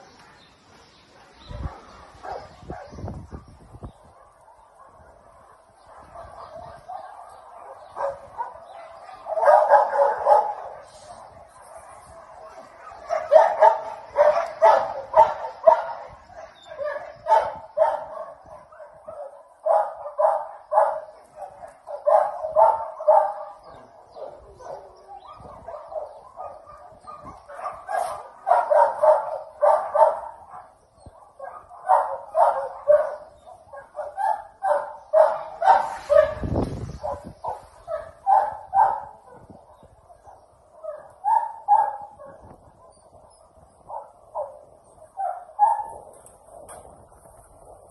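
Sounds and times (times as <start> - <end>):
dogs barking: 0.0 - 47.9.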